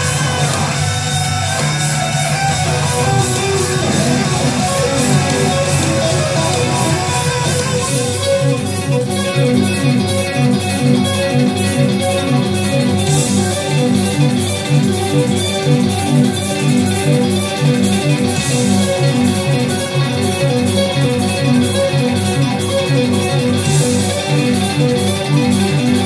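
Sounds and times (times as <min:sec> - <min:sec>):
electric guitar through amplifiers: 0:00.0 - 0:26.0.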